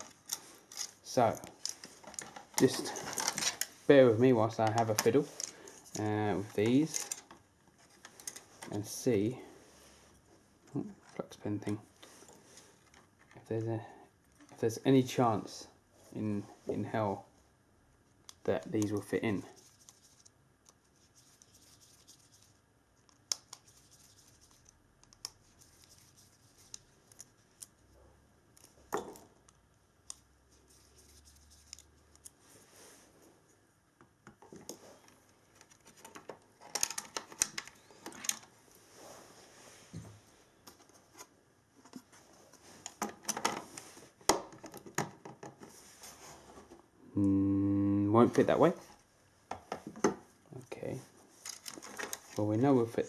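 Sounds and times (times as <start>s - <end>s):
light clicks and scratches: 4.5s - 8.8s, 18.3s - 27.9s, 29.5s - 32.5s
plastic clicks and rattles: 35.6s - 38.5s.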